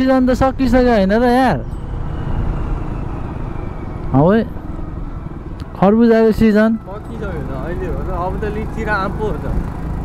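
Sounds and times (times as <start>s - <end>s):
wind noise: 0.0s - 6.5s
motorcycle engine hum: 0.0s - 10.0s
road noise: 0.0s - 10.0s.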